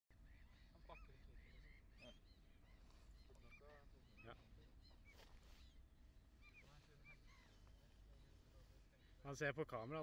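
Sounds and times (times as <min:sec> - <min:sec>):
flock of birds calling: 0:00.1 - 0:10.0.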